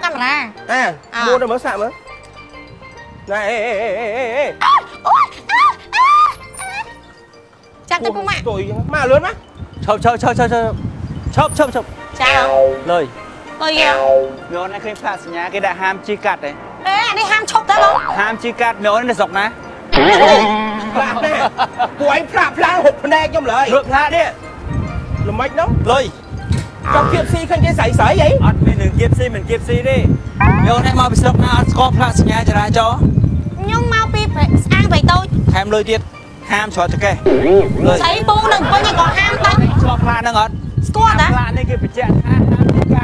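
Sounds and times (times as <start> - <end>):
high whistle-like tone: 37.3 - 39.7
people talking: 37.3 - 40.4.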